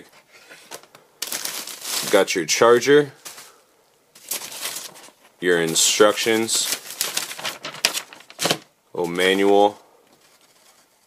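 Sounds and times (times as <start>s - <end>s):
plastic packaging crinkling: 0.7s - 2.6s, 3.2s - 3.6s, 4.2s - 8.7s.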